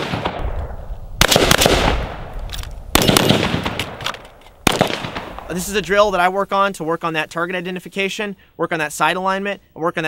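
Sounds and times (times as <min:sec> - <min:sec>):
gunshot echo: 0:00.0 - 0:06.0
rifle firing rapid shots: 0:01.2 - 0:02.2, 0:02.9 - 0:05.5.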